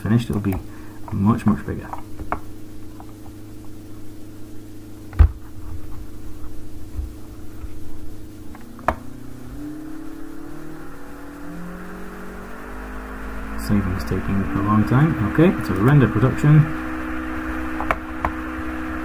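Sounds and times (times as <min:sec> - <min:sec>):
machine hum: 0:00.0 - 0:19.0.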